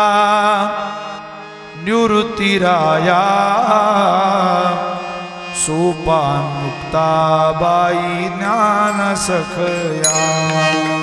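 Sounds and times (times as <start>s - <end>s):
held instrumental accompaniment: 0.7s - 11.0s
person chanting a melody: 5.6s - 11.0s.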